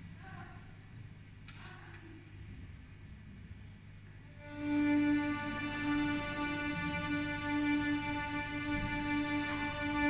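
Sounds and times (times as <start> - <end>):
violins holding a bowed note: 4.4 - 10.0.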